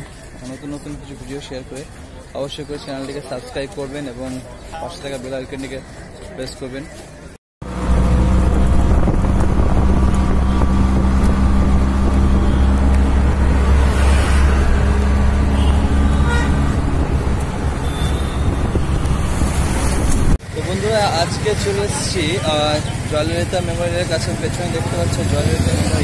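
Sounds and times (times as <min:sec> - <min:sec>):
road and wind noise: 0:00.0 - 0:26.0
auto-rickshaw engine drone: 0:07.6 - 0:26.0.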